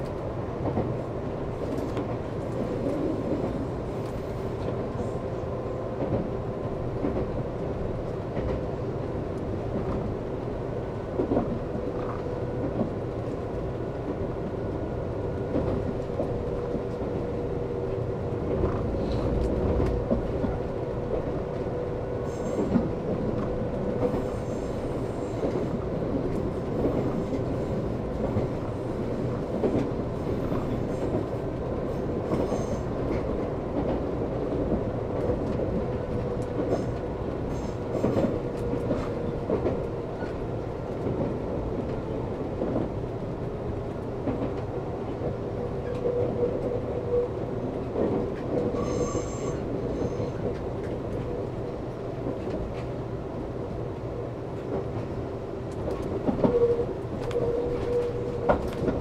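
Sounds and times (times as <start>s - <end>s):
train running hum: 0.0s - 59.0s
train wheels rumbling on rail: 0.0s - 59.0s
high wheel squeals: 48.8s - 50.3s.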